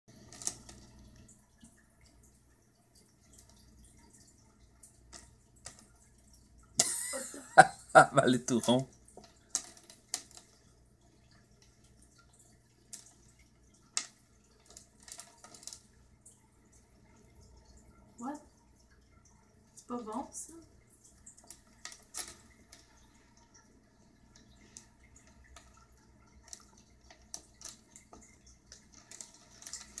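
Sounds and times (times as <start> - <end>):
aquarium water drips: 0.1 - 30.0
person speaking: 6.9 - 8.9.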